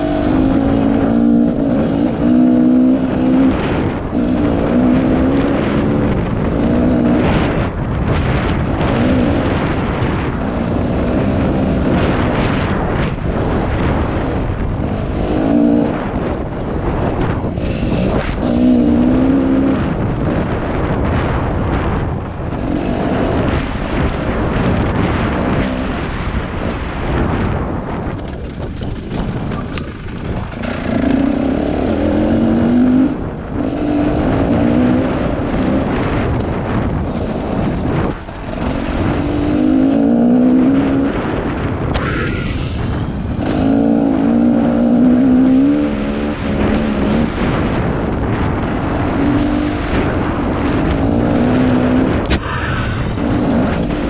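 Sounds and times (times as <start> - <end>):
dirt bike engine revving: 0.0 - 27.4, 29.0 - 54.0.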